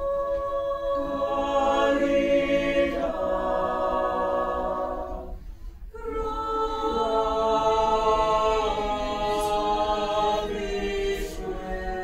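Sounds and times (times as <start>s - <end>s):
mixed choir singing unaccompanied: 0.0s - 12.0s.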